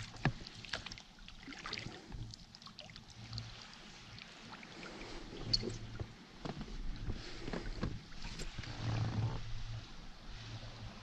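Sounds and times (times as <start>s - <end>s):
water slapping rubber dinghy: 0.0s - 9.8s.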